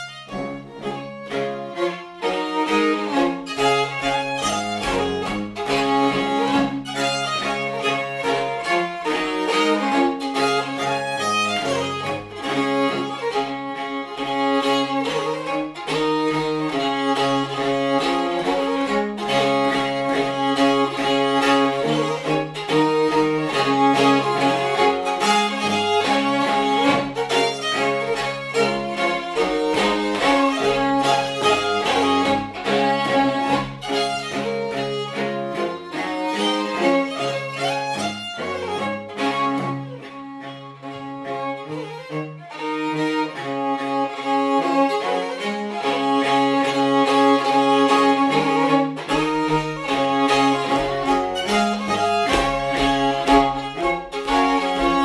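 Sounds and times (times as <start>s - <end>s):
bowed cello bass line: 0.0s - 55.0s
fiddle melody: 0.0s - 55.0s.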